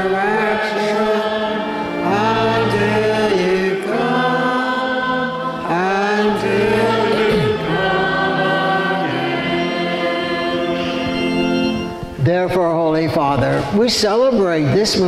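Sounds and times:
congregation singing a chant: 0:00.0 - 0:12.2
organ accompaniment: 0:00.0 - 0:15.0.

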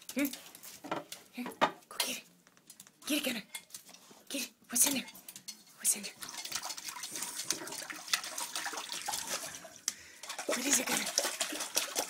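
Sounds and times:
dog splashing in toilet water: 0:06.1 - 0:12.0.

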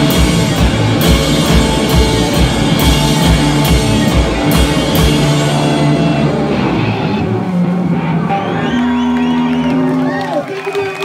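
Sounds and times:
amplified electric guitars ringing: 0:00.0 - 0:11.0
audience whooping and cheering: 0:05.7 - 0:11.0.

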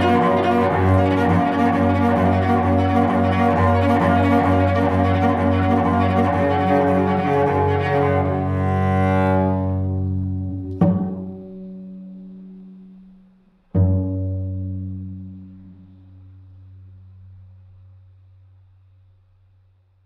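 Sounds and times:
plucked cello notes: 0:00.0 - 0:17.5
bowed cello note: 0:00.0 - 0:18.0.

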